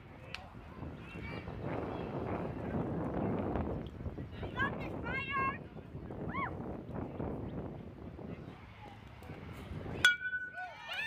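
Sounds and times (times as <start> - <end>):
metal bat hitting ball: 10.0 - 10.6.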